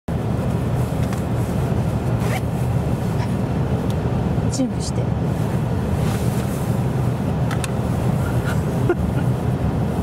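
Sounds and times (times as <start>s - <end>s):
low rumble inside car cabin: 0.1s - 10.0s.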